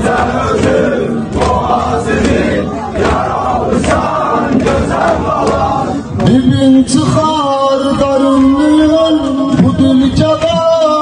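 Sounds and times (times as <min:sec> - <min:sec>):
crowd beating sharply: 0:00.0 - 0:07.4
crowd of men chanting: 0:00.0 - 0:11.0.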